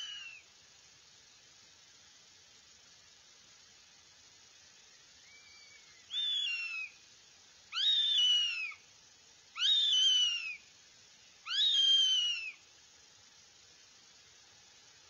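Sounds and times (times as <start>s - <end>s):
young hawks whistled calls: 0.0s - 0.4s, 5.2s - 7.0s, 7.7s - 8.8s, 9.6s - 10.7s, 11.4s - 12.6s.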